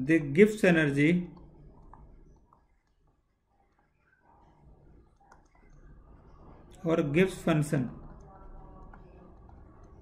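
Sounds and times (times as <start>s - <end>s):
soft clicks: 4.9s - 6.8s.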